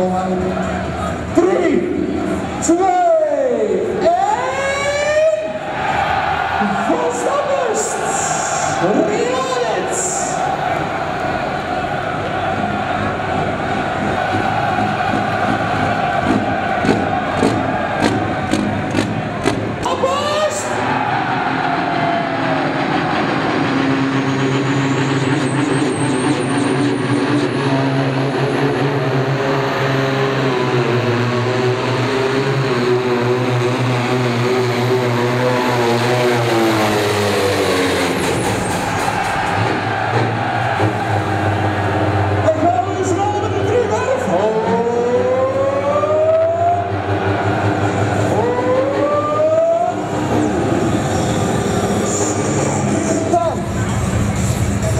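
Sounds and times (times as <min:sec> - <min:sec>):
tractor diesel engine under load: 0:06.6 - 0:54.9.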